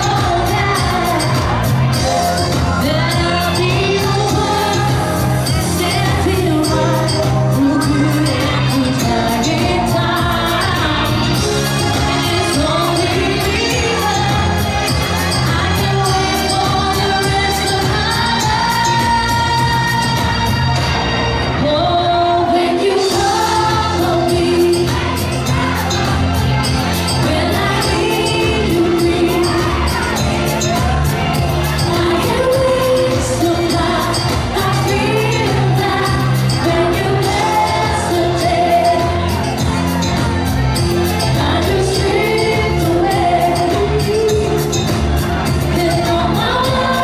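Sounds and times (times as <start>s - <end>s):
backing track with dance beat: 0.0s - 21.2s, 23.0s - 47.0s
woman singing pop: 0.0s - 47.0s.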